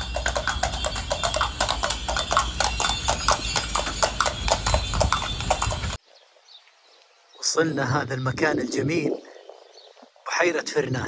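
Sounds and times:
horse hooves on cobblestones: 0.0s - 6.0s.

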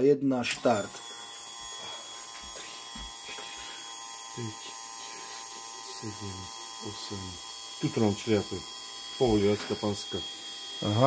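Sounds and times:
electric fuel pump whining: 0.4s - 11.0s.

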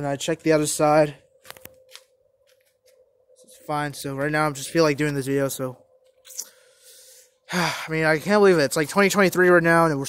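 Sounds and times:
faint steady tone: 0.0s - 10.0s.

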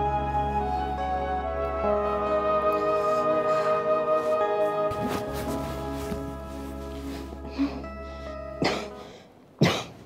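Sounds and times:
soft background music: 0.0s - 9.8s
person coughing: 8.6s - 10.0s.

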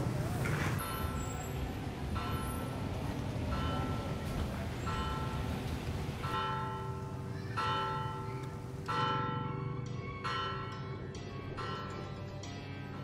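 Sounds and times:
church bell ringing: 2.1s - 4.3s, 4.9s - 5.6s, 6.2s - 12.1s.

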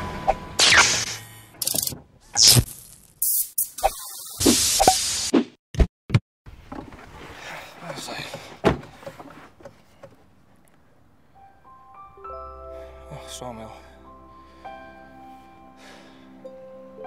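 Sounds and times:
clanks and clicks of car repair: 7.9s - 10.2s.

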